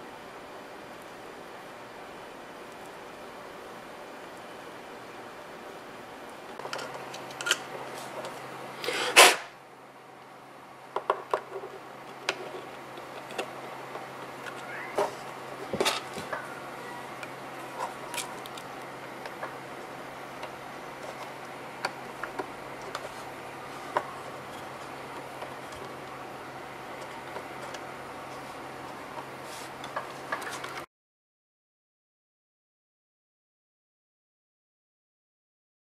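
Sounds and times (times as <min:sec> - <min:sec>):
faint low hum: 0:09.6 - 0:30.9.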